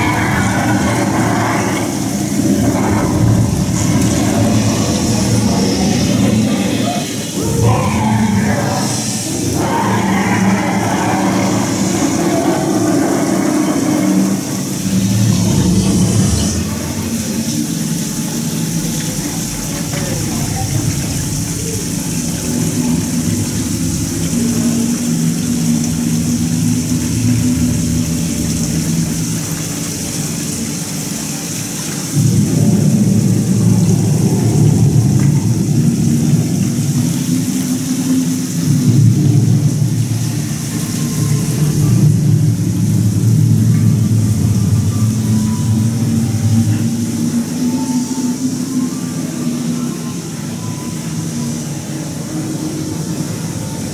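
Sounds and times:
dragon growls through speakers: 0.0s - 17.6s.

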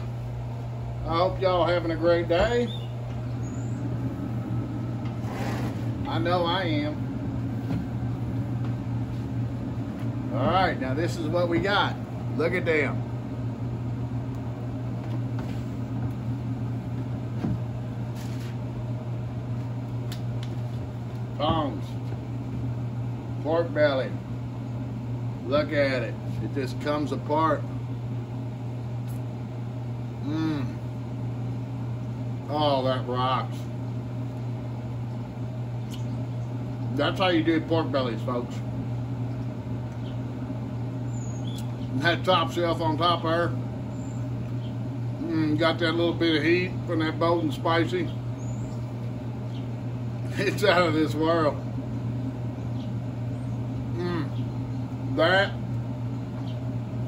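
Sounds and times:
low machine hum: 0.0s - 57.0s
faint high chirp: 2.7s - 3.8s.

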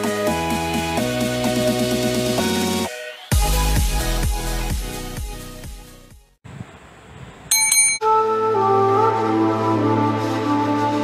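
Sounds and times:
bell-like ding: 7.5s - 8.1s.

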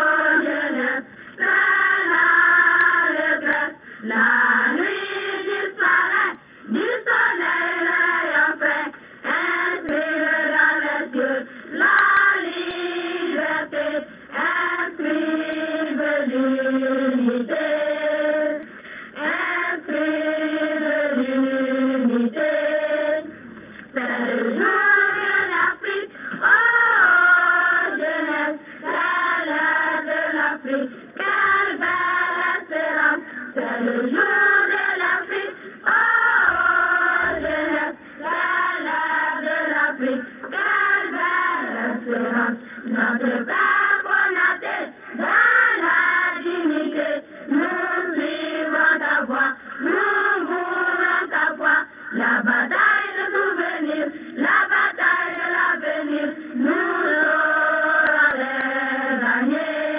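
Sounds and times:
children's choir singing: 0.0s - 59.9s.

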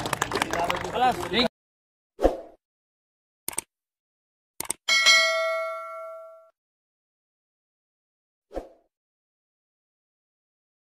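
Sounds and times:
quick clicks: 3.5s - 3.7s, 4.6s - 4.8s
bell ding: 4.9s - 6.5s.

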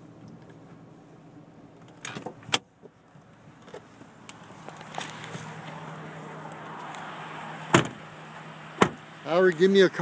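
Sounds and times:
car door shutting thud: 7.7s - 8.0s, 8.8s - 9.0s.

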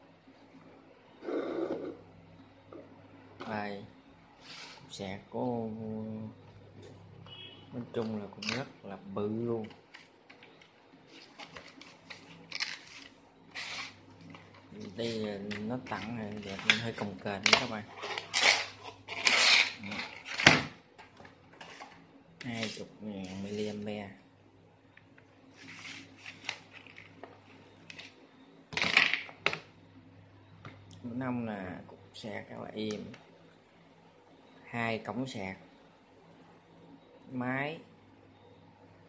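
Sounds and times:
rustling scrape: 4.4s - 4.9s, 11.1s - 14.0s, 21.6s - 22.0s, 22.6s - 23.8s, 25.5s - 26.5s
packaging clicks and rustles: 9.8s - 20.5s.

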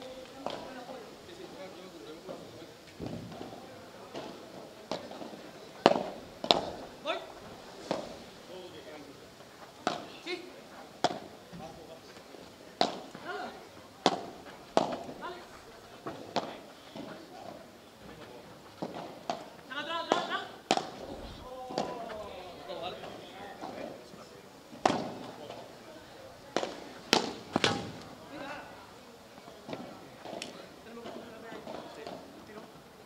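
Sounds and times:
ball bouncing: 3.0s - 6.8s, 9.8s - 10.2s, 11.0s - 11.7s, 12.8s - 13.2s, 14.0s - 15.4s, 18.8s - 22.3s, 24.8s - 25.3s, 26.6s - 28.0s
padel ball struck with rackets: 4.1s - 6.8s, 9.8s - 10.1s, 11.0s - 11.3s, 12.8s - 13.2s, 14.0s - 15.4s, 16.1s - 17.1s, 18.8s - 21.1s, 24.8s - 25.3s, 26.6s - 28.0s.

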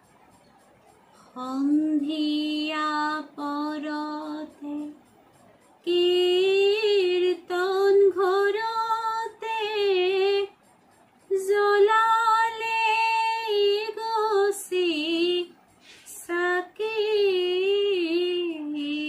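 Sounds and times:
woman singing devotional song: 1.1s - 19.0s.

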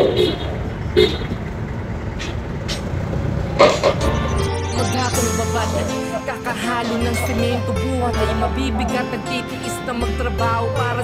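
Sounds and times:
low rumble of road traffic: 0.0s - 4.0s.

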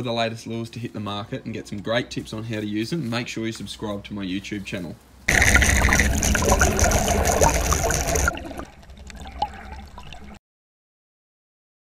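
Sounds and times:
small water drips: 5.3s - 10.4s
water gurgling: 5.3s - 10.4s.

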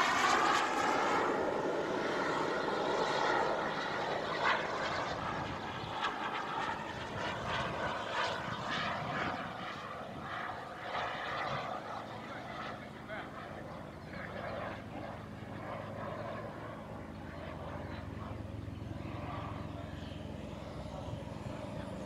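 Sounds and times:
model jet turbine rush: 0.0s - 3.7s.

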